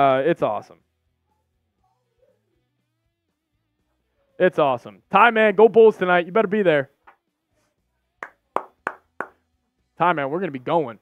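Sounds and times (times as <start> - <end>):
man clapping hands: 8.2 - 9.4.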